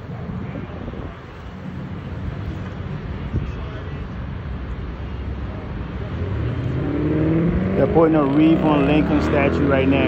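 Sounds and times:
vehicle engine rising in pitch: 0:06.1 - 0:10.0.

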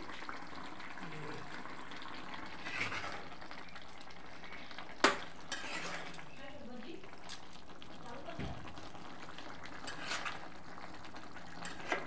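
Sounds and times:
curry sizzling in a pan: 0:00.0 - 0:12.0
spoon stirring: 0:05.1 - 0:06.5, 0:09.8 - 0:10.4.

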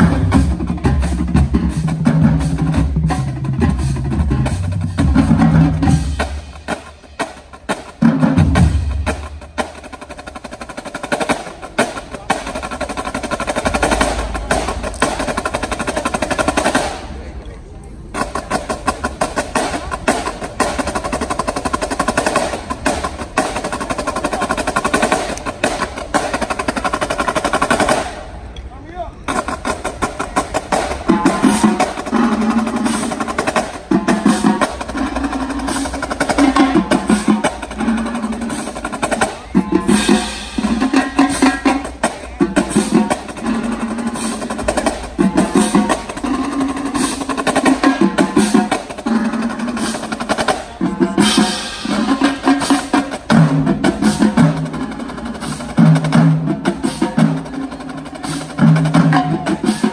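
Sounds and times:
tenor and bass drum notes: 0:00.0 - 0:17.4, 0:18.0 - 0:59.9
snare drum rolls: 0:29.3 - 0:59.9.

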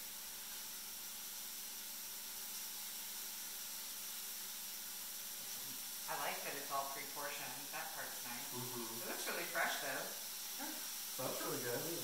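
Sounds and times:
mushrooms sizzling in oil: 0:00.0 - 0:12.0.

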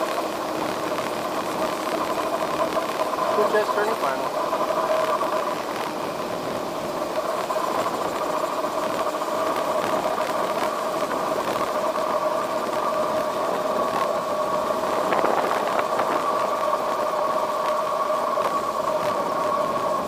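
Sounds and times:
air rushing over glider: 0:00.0 - 0:20.0
steady two-pitch hum: 0:00.0 - 0:20.0.

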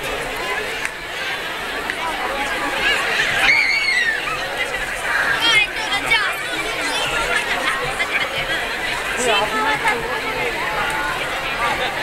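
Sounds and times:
dense crowd chatter: 0:00.0 - 0:12.0.

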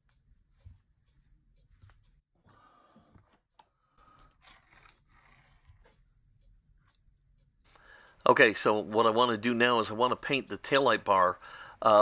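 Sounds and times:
cloth rustling on mat: 0:00.0 - 0:02.3.

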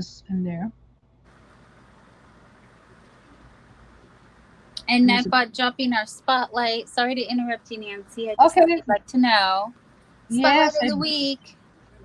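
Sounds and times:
faint steady hiss: 0:00.0 - 0:12.0
low hum: 0:00.0 - 0:12.0.

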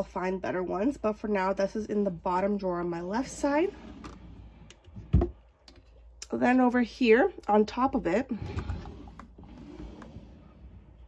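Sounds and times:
drawer sliding shut: 0:08.4 - 0:11.0.

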